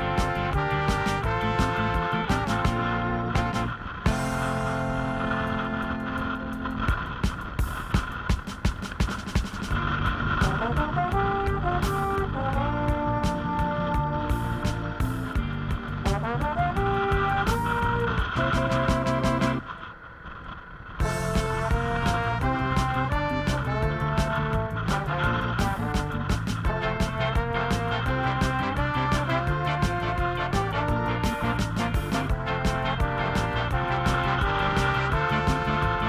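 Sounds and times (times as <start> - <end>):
background music with steady beat: 0.0 - 19.7, 21.0 - 36.0.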